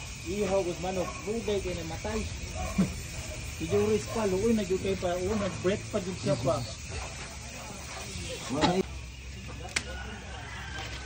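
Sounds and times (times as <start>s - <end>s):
steady hiss: 0.0s - 10.6s.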